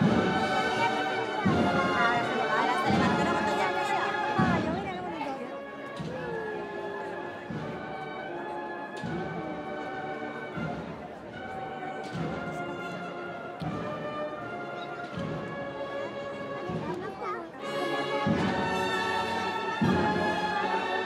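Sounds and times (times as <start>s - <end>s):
heavy drum beat: 0.0s - 5.1s, 18.2s - 20.8s
cornets playing march melody: 0.0s - 16.8s, 17.5s - 21.0s.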